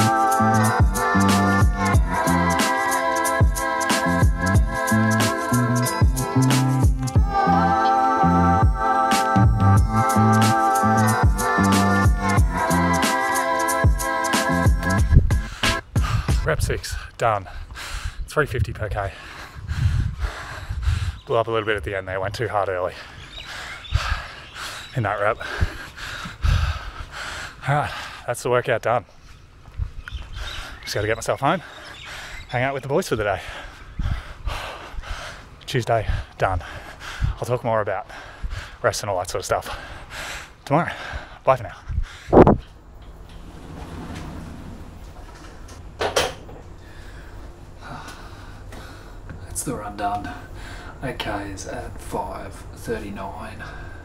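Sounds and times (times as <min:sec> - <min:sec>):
steady low hum: 0:00.0 - 0:17.6, 0:40.9 - 0:54.0
person breathing hard and panting: 0:13.6 - 0:18.3, 0:19.0 - 0:21.3, 0:23.0 - 0:28.3, 0:31.6 - 0:32.5, 0:33.4 - 0:37.4, 0:38.0 - 0:38.8, 0:39.6 - 0:42.4, 0:46.8 - 0:49.3
low thumps: 0:14.7 - 0:16.5, 0:42.3 - 0:46.7
wind buffeting microphone: 0:15.0 - 0:22.4, 0:25.4 - 0:27.2, 0:29.6 - 0:31.2, 0:33.7 - 0:37.6, 0:41.2 - 0:46.0.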